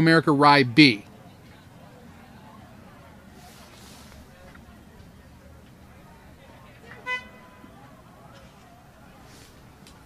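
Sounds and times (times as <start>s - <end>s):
finish-line horn blast: 6.8s - 7.9s.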